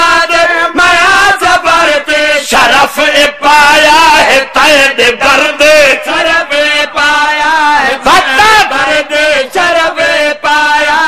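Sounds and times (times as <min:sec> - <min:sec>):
man chanting into microphone: 0:00.0 - 0:11.0.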